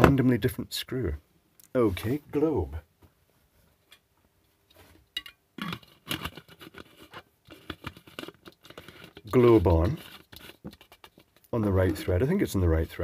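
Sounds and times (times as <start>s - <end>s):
globe scraping on thread: 5.6s - 13.0s.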